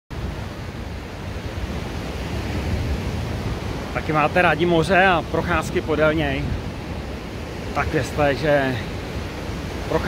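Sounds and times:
surf washing onto beach: 0:00.1 - 0:10.0
wind buffeting microphone: 0:00.2 - 0:10.0.

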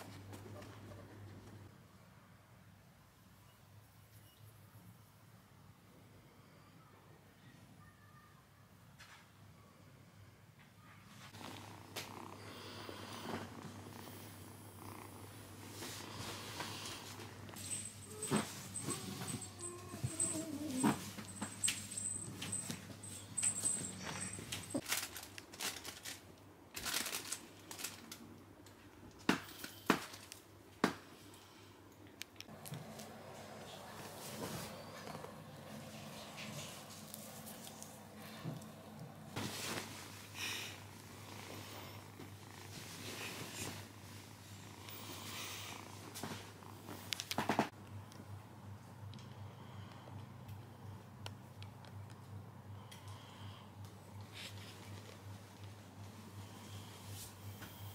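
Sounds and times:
rustling of fur and bedding: 0:11.2 - 0:26.2, 0:32.5 - 0:47.8, 0:54.2 - 0:57.9
kitten purring: 0:11.3 - 0:22.8, 0:32.6 - 0:47.4.

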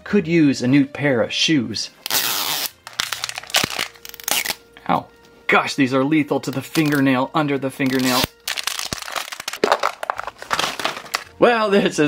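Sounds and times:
plastic wrapper ripping: 0:02.0 - 0:04.6, 0:06.4 - 0:07.0, 0:07.8 - 0:11.3
plastic wrapper crinkling: 0:02.1 - 0:04.6, 0:06.4 - 0:07.1, 0:07.8 - 0:11.3.

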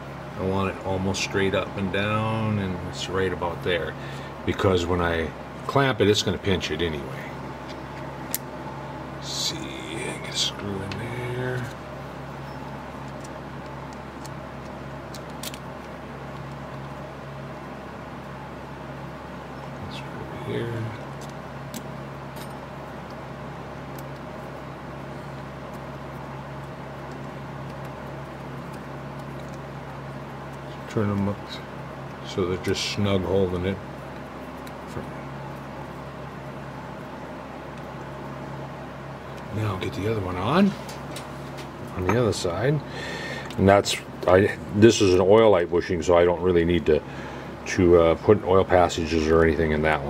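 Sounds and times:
steady low hum: 0:00.0 - 0:50.0.

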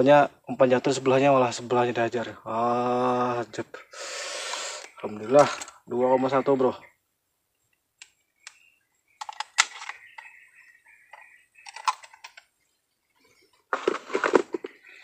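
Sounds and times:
sharp metal clicks: 0:09.2 - 0:10.3, 0:11.1 - 0:12.5.

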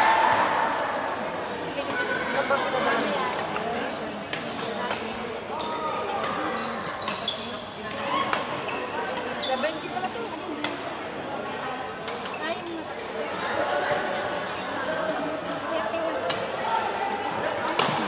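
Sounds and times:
indistinct echoing voices: 0:00.0 - 0:06.6, 0:07.8 - 0:18.0.

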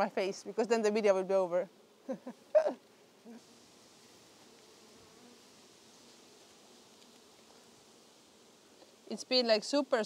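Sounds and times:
honeybees buzzing: 0:00.0 - 0:10.0.

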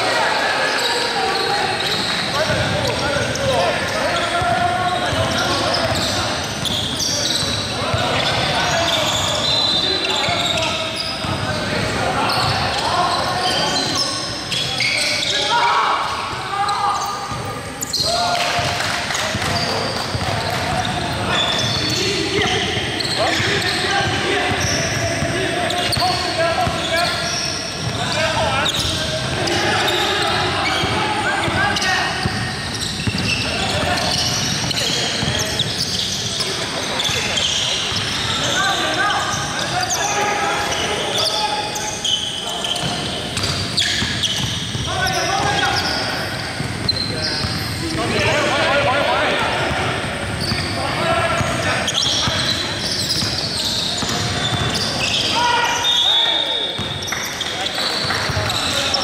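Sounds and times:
players calling out: 0:00.0 - 0:59.0
sneakers squeaking: 0:00.0 - 0:59.0.

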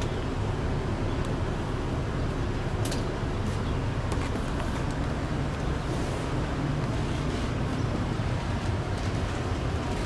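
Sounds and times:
tram rumbling on track: 0:00.0 - 0:10.0.

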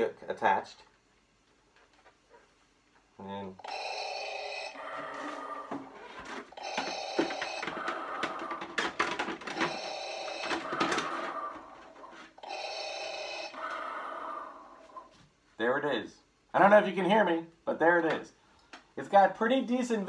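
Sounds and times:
mechanical breathing through speaker: 0:04.4 - 0:06.2, 0:07.2 - 0:12.4, 0:13.1 - 0:15.1
plastic parts clicking and knocking: 0:06.6 - 0:11.3.

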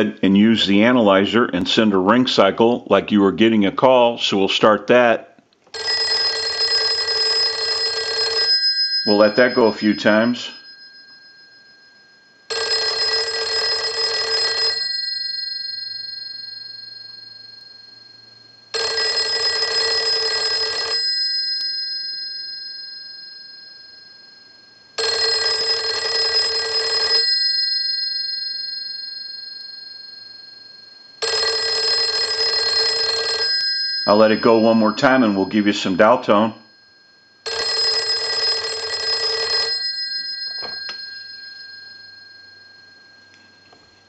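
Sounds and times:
telephone bell ringing: 0:05.7 - 0:44.0.

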